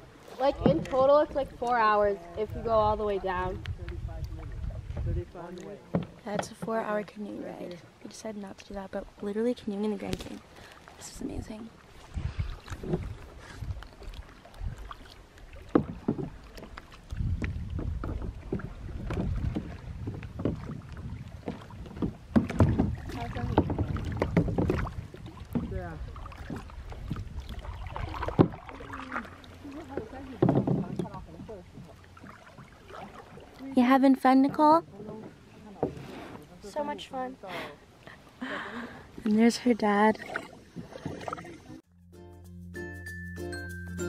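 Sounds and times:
paddle splashing in water: 0:00.0 - 0:03.5, 0:04.2 - 0:37.3, 0:37.9 - 0:41.8
knocks against inflatable kayak: 0:21.5 - 0:24.9, 0:30.4 - 0:31.5.

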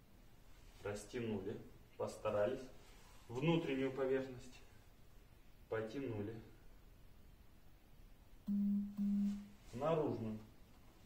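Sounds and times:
steady low pure tone: 0:08.5 - 0:09.6.

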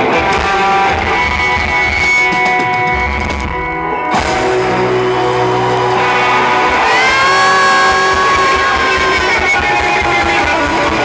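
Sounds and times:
electric guitar sustained notes: 0:00.0 - 0:11.0
live band playing: 0:00.0 - 0:11.0.

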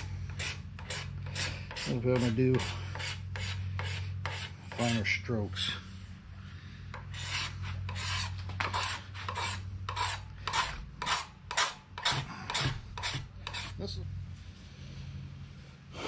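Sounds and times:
file rasping on wood: 0:00.0 - 0:05.2, 0:06.9 - 0:13.8.

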